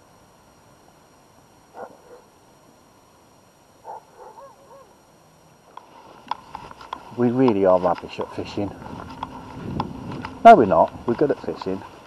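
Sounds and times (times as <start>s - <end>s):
distant animal calls: 1.7s - 2.3s, 3.8s - 5.0s
faint clicks: 5.7s - 8.4s.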